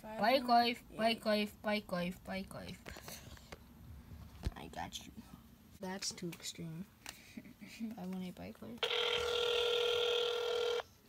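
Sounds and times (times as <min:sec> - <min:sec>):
phone ringback tone: 0:08.8 - 0:11.0.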